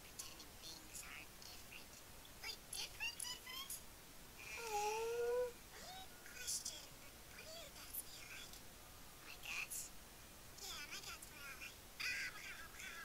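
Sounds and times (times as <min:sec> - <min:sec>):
held voiced sound: 0:04.4 - 0:05.6
faint voices: 0:04.4 - 0:06.7.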